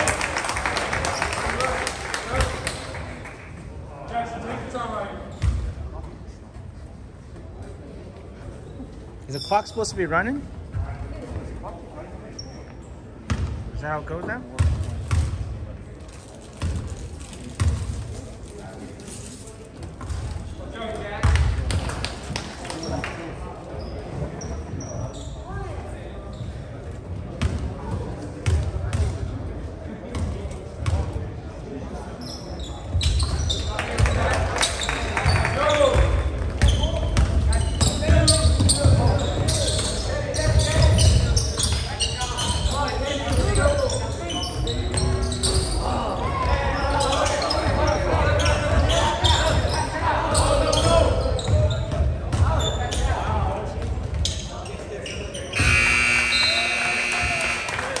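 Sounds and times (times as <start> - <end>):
voices echoing in gym: 0.0 - 58.0
buzzer sounding: 55.6 - 57.8.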